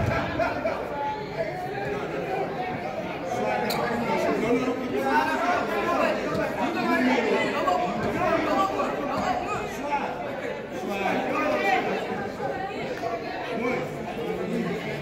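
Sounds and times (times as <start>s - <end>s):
chatter of many voices: 0.0s - 15.0s.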